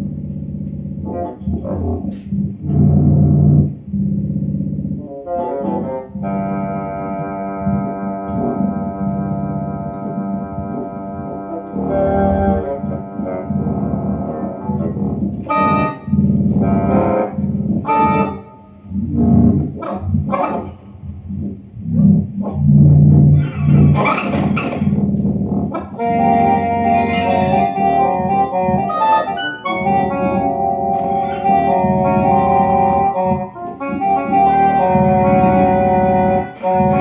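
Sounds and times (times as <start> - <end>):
low synthesizer notes: 0.0 - 37.0.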